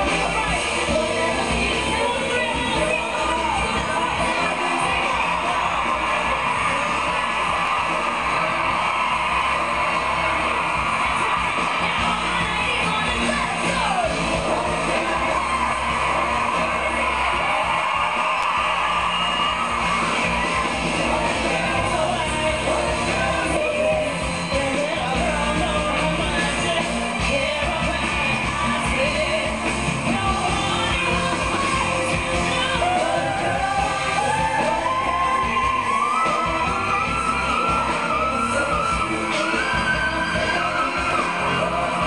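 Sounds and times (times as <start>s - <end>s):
woman singing: 0.0s - 7.4s, 11.2s - 16.1s, 20.1s - 42.0s
live band playing: 0.0s - 42.0s.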